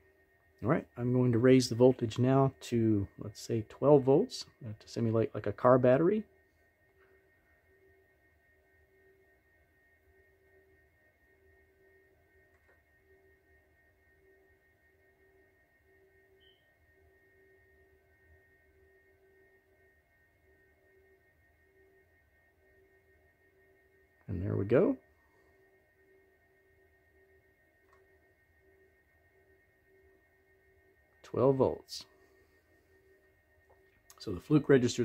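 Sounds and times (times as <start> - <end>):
faint steady tones: 0.0 - 35.0.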